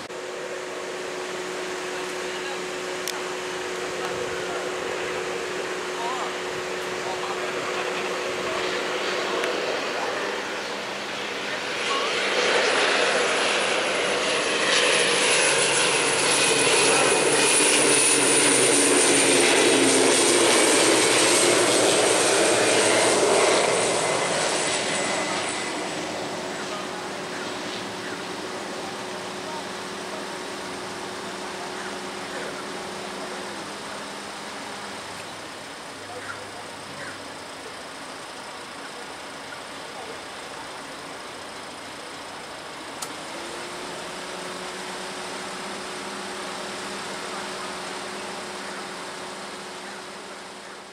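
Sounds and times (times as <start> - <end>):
propeller aircraft passing: 0.0 - 50.9.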